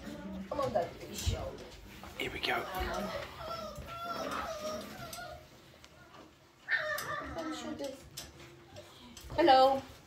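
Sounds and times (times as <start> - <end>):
puppy crying: 2.9 - 5.6, 6.6 - 7.7.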